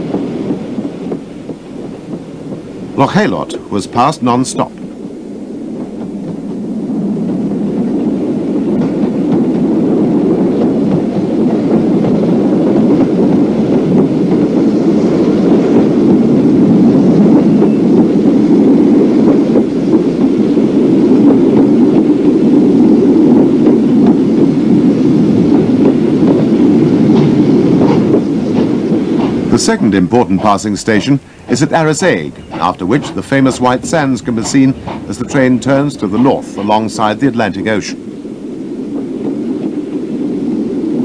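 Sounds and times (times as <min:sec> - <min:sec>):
train rumbling: 0:00.0 - 0:41.0.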